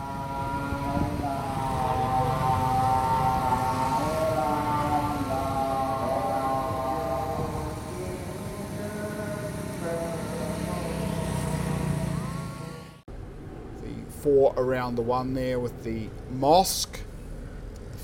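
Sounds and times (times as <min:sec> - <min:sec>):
call to prayer over loudspeakers: 0:00.0 - 0:13.0, 0:13.8 - 0:17.0
city traffic rumble: 0:00.0 - 0:18.0.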